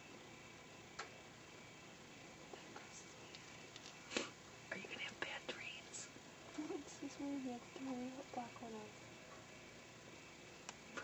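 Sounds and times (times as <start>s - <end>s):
person whispering: 4.7s - 6.7s.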